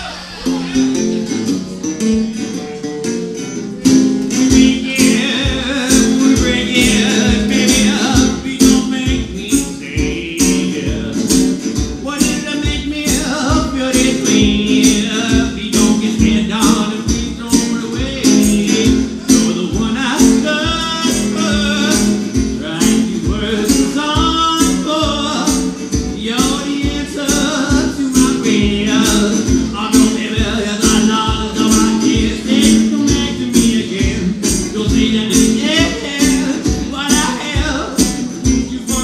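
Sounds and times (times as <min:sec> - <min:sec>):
strummed resonator guitar: 0:00.0 - 0:39.0
man singing: 0:02.5 - 0:39.0.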